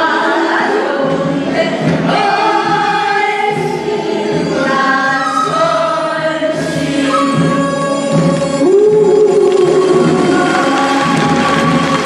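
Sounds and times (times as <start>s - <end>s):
chorus singing folk song: 0.0s - 12.0s.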